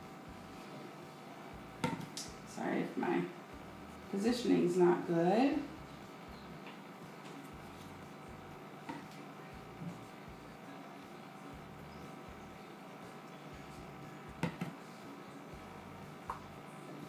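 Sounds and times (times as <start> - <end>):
room hum: 0.0 - 17.0.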